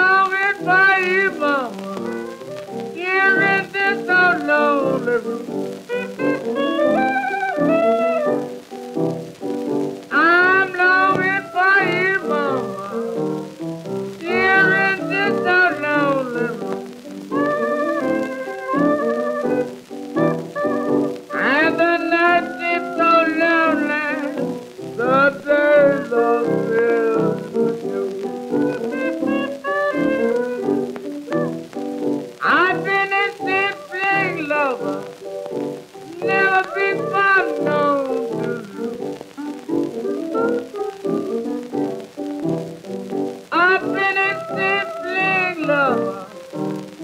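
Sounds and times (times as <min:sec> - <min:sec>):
person singing: 0:00.0 - 0:08.8, 0:10.1 - 0:42.1, 0:43.4 - 0:47.0
blues piano playing: 0:00.0 - 0:47.0.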